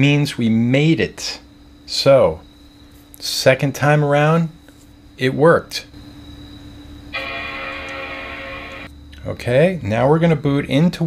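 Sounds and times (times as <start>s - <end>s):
computer startup chime: 7.2s - 8.9s.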